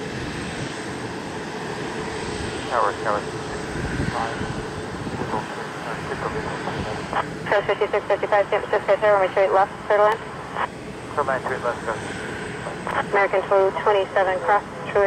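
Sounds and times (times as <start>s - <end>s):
jet engines running: 0.0s - 15.0s
radio voices: 2.7s - 4.5s, 5.1s - 15.0s.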